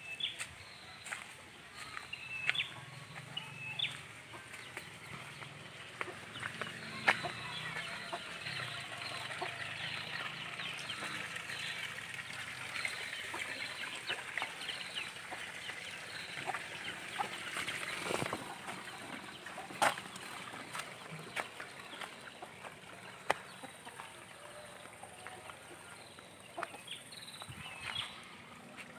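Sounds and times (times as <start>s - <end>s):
chickens clucking: 0.2s - 28.9s.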